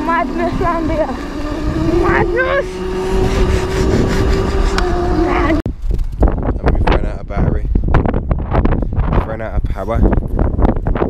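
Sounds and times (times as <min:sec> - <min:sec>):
electric motor whining: 0:00.0 - 0:05.6
trail and wind rumble: 0:00.0 - 0:11.0
wind buffeting microphone: 0:00.0 - 0:11.0.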